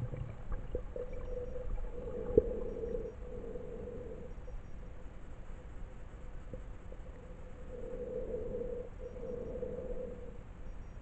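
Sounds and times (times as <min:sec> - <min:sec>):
muffled underwater hum: 0:00.0 - 0:11.0.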